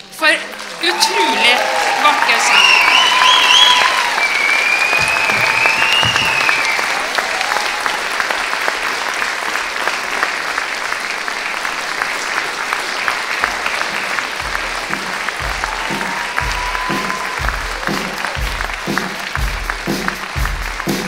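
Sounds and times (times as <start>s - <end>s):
audience applauding: 0.0s - 21.0s
high whistle: 2.5s - 7.0s, 15.6s - 18.4s.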